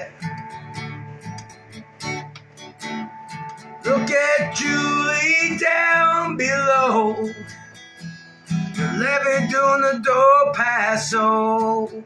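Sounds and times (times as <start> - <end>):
acoustic guitar strummed: 0.0 - 12.0
man singing: 3.8 - 7.5, 8.7 - 12.0.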